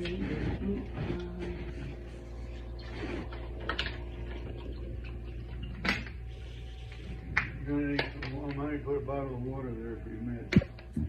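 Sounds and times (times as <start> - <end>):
voice with stepping pitches: 0.0 - 5.7.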